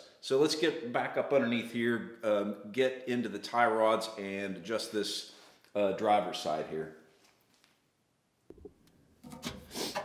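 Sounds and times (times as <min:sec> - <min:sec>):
rubbing and scraping handling sounds: 0:09.2 - 0:10.0.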